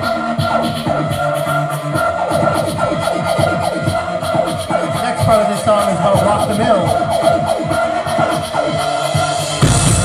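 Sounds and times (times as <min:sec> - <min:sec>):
heavy drums: 0:00.0 - 0:10.0
bass: 0:09.3 - 0:10.0
live rock band playing: 0:09.4 - 0:10.0.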